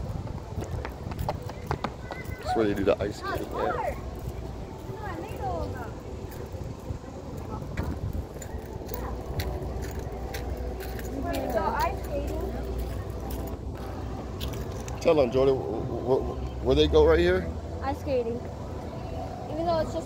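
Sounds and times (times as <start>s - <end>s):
low city rumble: 0.0s - 20.0s
voices: 0.0s - 20.0s.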